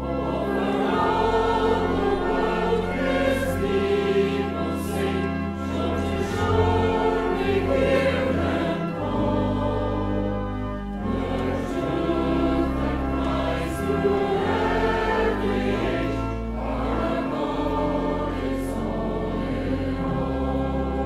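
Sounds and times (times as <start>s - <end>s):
choir singing a hymn: 0.0s - 21.0s
sustained low accompaniment: 0.0s - 21.0s.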